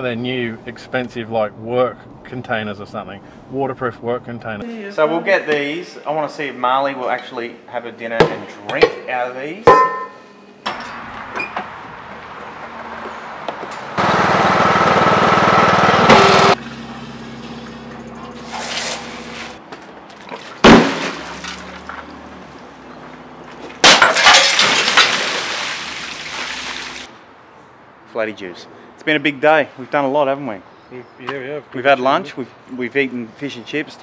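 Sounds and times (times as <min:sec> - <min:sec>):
water gushing and splashing: 0:18.4 - 0:19.6, 0:20.2 - 0:22.0, 0:24.6 - 0:27.1
breaking glass crash: 0:20.4 - 0:22.2, 0:23.8 - 0:26.8.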